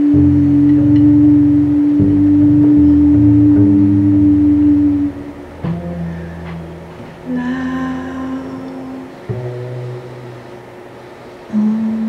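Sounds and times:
double bass lower notes: 0.0s - 12.0s
jazz quartet holding long note: 0.0s - 12.0s.

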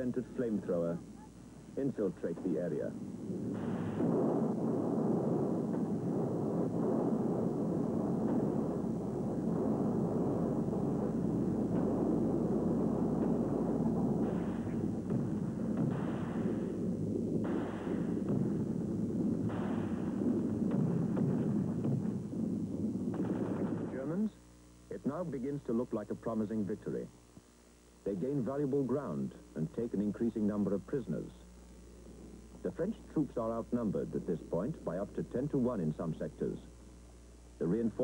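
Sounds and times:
loud blasts: 0.0s - 26.1s
rumbling gunfire and artillery: 2.1s - 24.4s.

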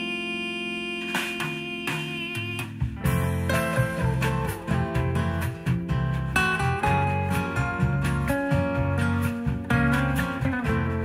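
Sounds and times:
held chord through speaker: 0.0s - 5.7s
plucked notes: 0.0s - 11.0s.

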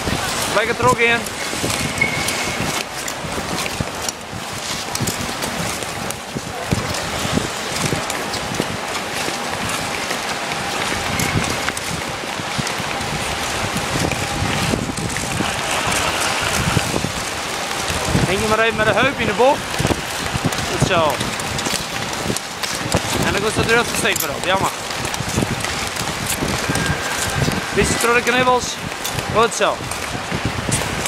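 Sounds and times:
voices of skaters: 0.0s - 4.0s, 4.6s - 30.1s
ice skates scraping ice: 0.3s - 30.1s.

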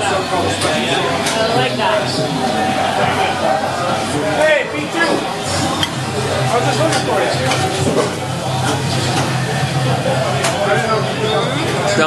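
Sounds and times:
restaurant chatter: 0.0s - 12.0s.

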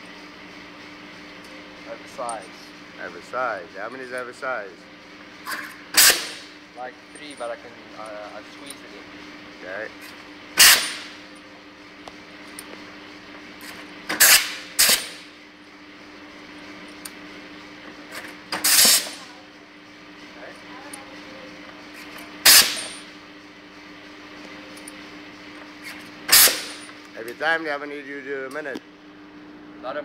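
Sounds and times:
steady hum: 0.0s - 30.0s
sharp strokes with hiss: 18.6s - 19.2s.

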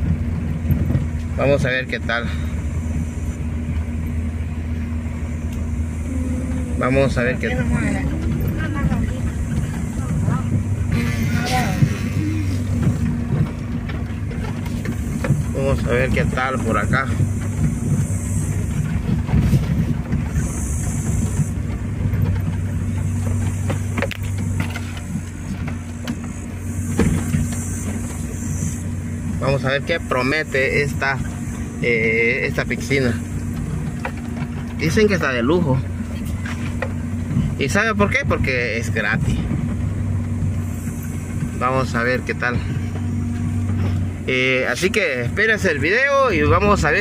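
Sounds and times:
rattles and knocks on rough track: 0.0s - 47.0s
road noise: 0.0s - 47.0s
vehicle engine hum: 0.0s - 47.0s.

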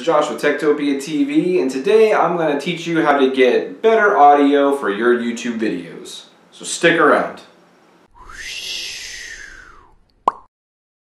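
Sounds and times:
whoosh with rising falling tone: 8.1s - 10.0s.

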